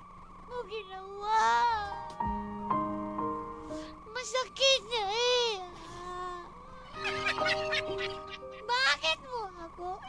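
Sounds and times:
background music: 0:01.7 - 0:05.1, 0:06.5 - 0:10.0.

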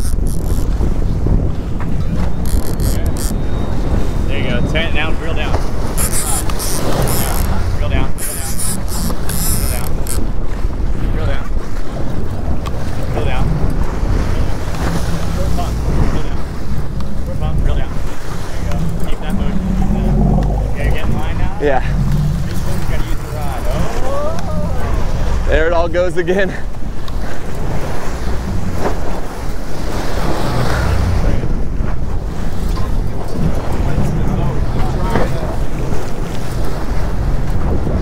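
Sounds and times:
water splashing against boat hull: 0:00.0 - 0:38.0
wind buffeting microphone: 0:00.0 - 0:38.0.

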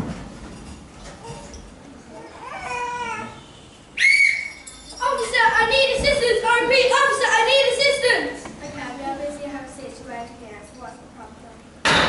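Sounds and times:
shrill high-pitched note: 0:04.0 - 0:04.9.

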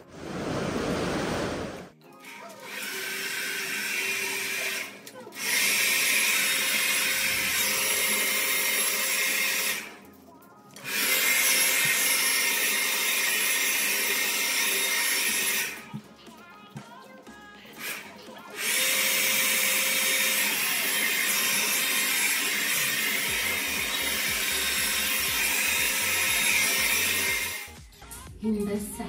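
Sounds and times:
hair dryer blowing: 0:00.0 - 0:01.9, 0:02.6 - 0:09.9, 0:10.8 - 0:16.0, 0:17.8 - 0:27.8.

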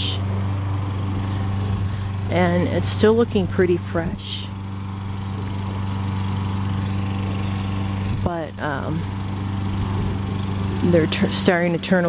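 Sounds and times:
small engine droning: 0:00.0 - 0:12.0.

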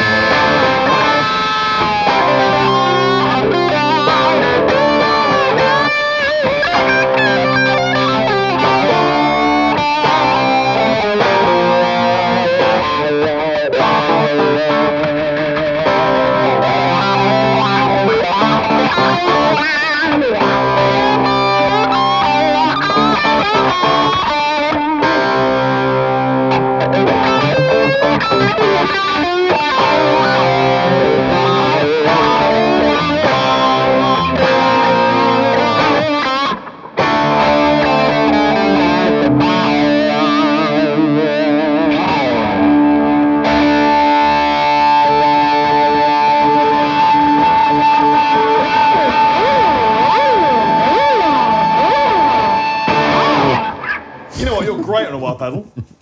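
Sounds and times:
distorted electric guitar lead: 0:00.0 - 0:56.0.

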